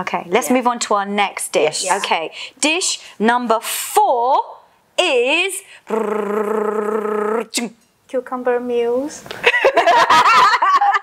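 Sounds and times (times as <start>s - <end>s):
woman's drawn-out vocal sound: 5.8s - 7.6s.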